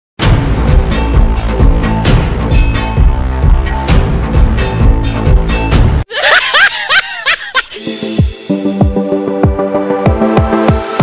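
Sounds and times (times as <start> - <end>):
electronic music: 0.3 - 6.0, 7.7 - 11.0
comic laugh sound effect: 6.1 - 7.8.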